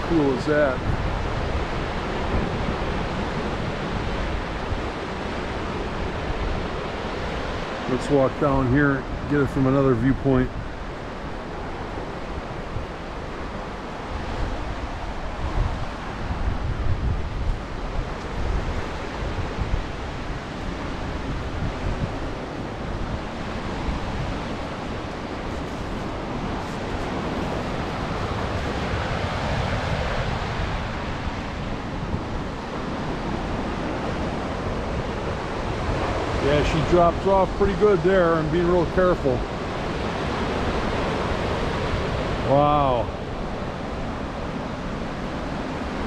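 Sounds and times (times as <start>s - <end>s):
waves washing onto shore: 0.0s - 46.0s
wind gusting on microphone: 0.0s - 46.0s.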